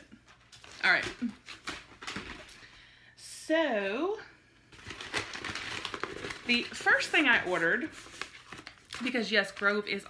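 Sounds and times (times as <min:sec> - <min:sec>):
rustling in cardboard box: 0:04.8 - 0:09.8.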